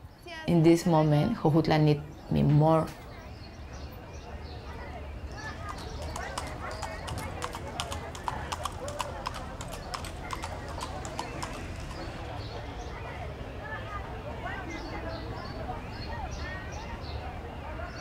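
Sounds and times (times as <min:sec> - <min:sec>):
hooves clip-clopping on pavement: 0:05.3 - 0:12.9.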